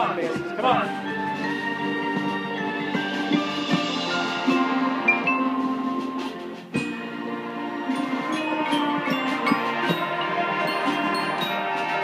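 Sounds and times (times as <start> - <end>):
mallet percussion: 0.0 - 12.0
marching band wind chords: 0.0 - 12.0.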